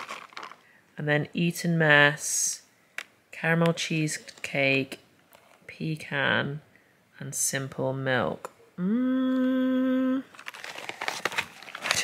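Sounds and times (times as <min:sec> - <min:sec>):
packaging crinkling and rustling: 0:00.0 - 0:00.7, 0:10.3 - 0:12.0.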